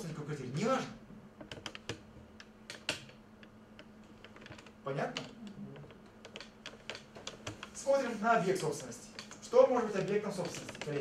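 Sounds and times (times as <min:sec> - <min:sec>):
faint low hum: 0:00.0 - 0:11.0
typing on computer keyboard: 0:04.1 - 0:07.8.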